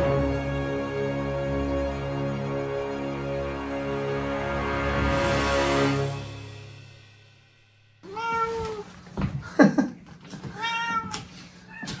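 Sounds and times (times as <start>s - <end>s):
cat meowing: 8.0s - 8.9s, 10.5s - 12.0s.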